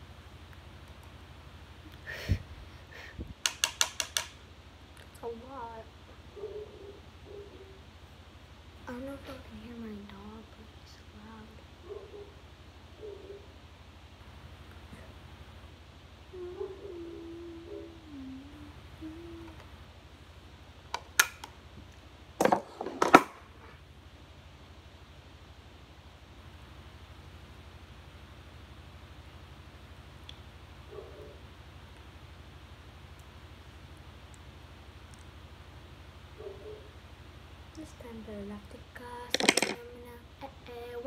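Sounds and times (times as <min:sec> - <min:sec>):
dog whining: 0:16.3 - 0:18.2.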